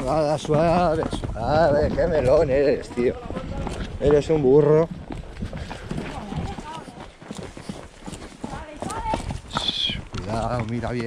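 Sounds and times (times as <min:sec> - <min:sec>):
horse hooves on stony trail: 0:00.0 - 0:11.0.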